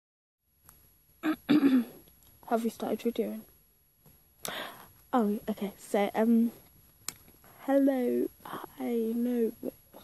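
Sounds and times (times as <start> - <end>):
person clearing throat: 1.2 - 2.0.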